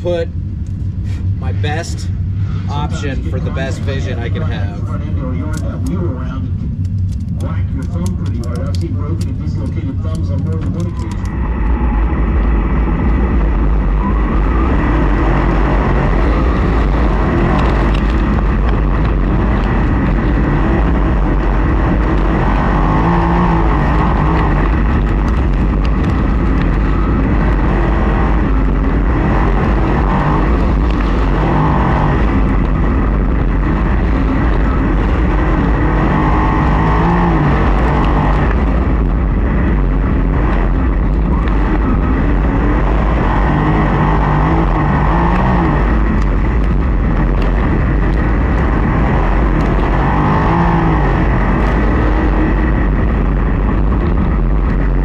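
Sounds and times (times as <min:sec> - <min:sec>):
low rumble of wind and exhaust: 0:00.0 - 0:55.0
race car engine revving: 0:01.4 - 0:55.0.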